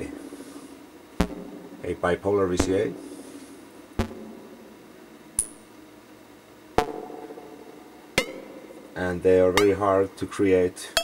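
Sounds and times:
synthesizer percussive hits: 0:01.2 - 0:01.9, 0:03.8 - 0:04.8, 0:06.8 - 0:09.0
high-pitched synth ping: 0:08.2 - 0:08.8.

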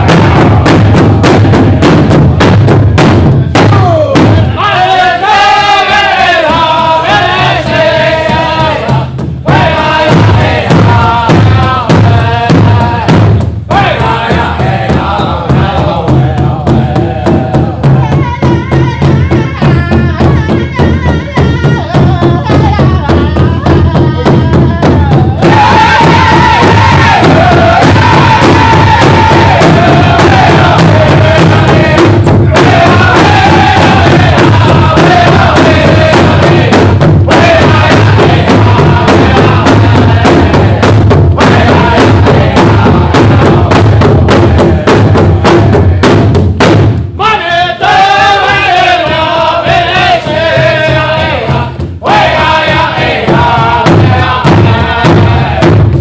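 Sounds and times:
men singing high lines: 0:00.0 - 0:01.8, 0:03.4 - 0:46.1, 0:47.2 - 0:55.8
large drum steady beat: 0:00.0 - 0:56.0.

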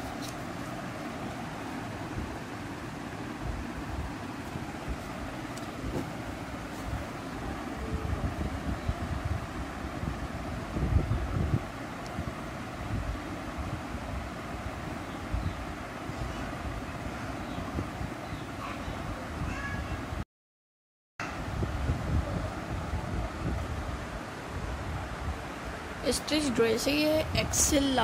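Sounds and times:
wind buffeting microphone: 0:03.3 - 0:20.2, 0:21.2 - 0:28.0.

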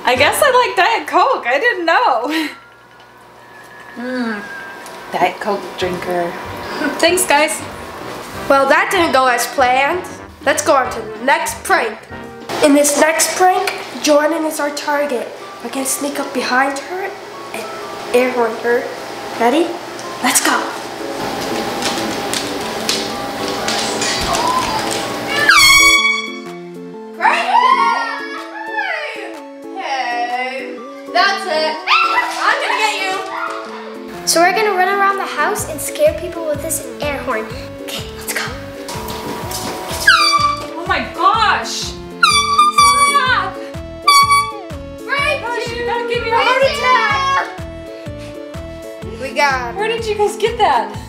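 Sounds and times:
background music: 0:00.0 - 0:51.0
air horn blast: 0:25.3 - 0:26.6, 0:40.0 - 0:40.8, 0:42.2 - 0:43.4, 0:44.0 - 0:44.8.

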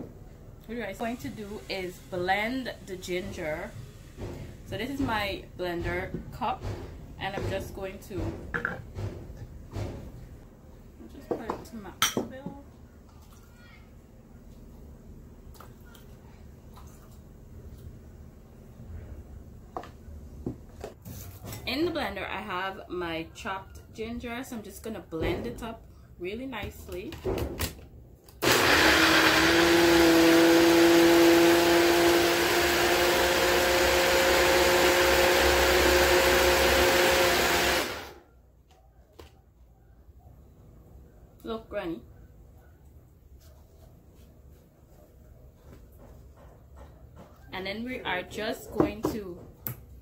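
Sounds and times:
blender motor whirring: 0:28.4 - 0:38.2.

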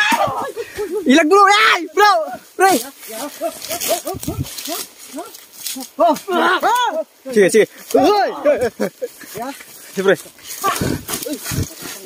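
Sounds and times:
men grunting and crying out: 0:00.0 - 0:09.2, 0:10.5 - 0:12.0.

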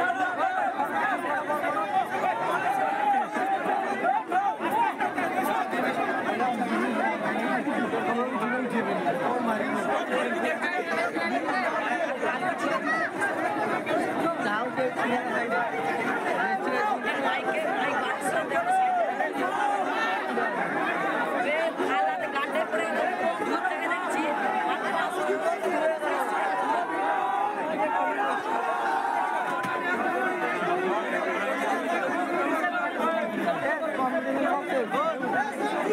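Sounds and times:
crowd babble: 0:00.0 - 0:35.9.

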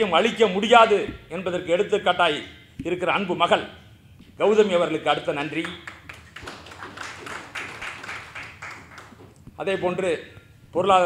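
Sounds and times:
audience applauding: 0:05.6 - 0:09.4.

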